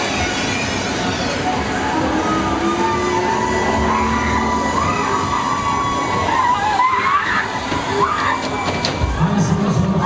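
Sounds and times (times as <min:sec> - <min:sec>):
crowd noise: 0:00.0 - 0:10.0
loud ride music: 0:00.0 - 0:10.0.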